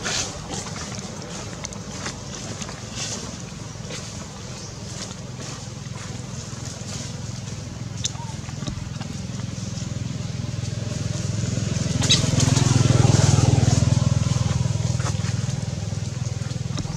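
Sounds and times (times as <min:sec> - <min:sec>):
dry leaves rustling and clicking: 0:00.0 - 0:16.9.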